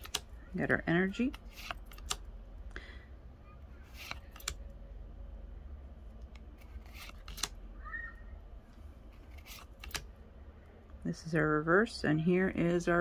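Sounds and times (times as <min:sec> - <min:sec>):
trading cards snapping: 0:00.0 - 0:00.3, 0:01.3 - 0:02.2, 0:03.9 - 0:04.6, 0:06.2 - 0:07.6, 0:09.2 - 0:10.1.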